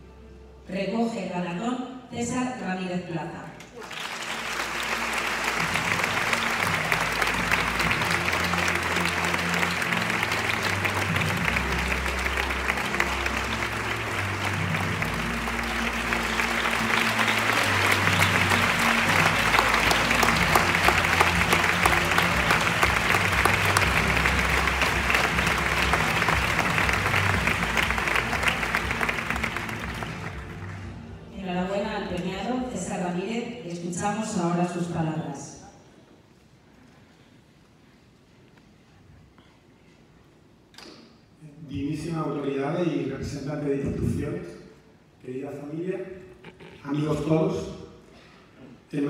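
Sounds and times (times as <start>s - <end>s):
audience applauding: 3.6s - 31.0s, 46.4s - 46.8s
music playing: 3.7s - 33.4s.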